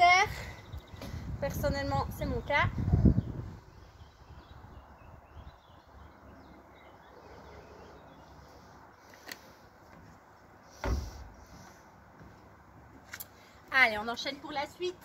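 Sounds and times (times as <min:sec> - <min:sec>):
wind rumble on microphone: 0:00.3 - 0:06.1
dull thump: 0:10.8 - 0:11.3.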